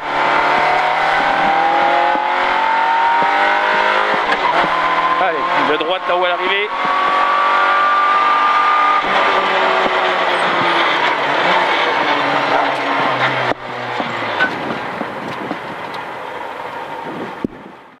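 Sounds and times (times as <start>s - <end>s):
rally car engine from inside: 0.0s - 16.0s.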